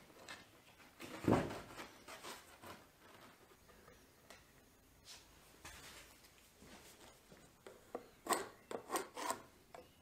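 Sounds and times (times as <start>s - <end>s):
scraping strokes on plywood: 8.3s - 9.5s.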